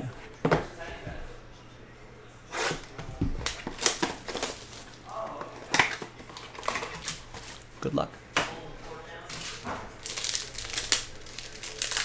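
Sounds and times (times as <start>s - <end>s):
cardboard cracking and tearing: 9.3s - 12.0s.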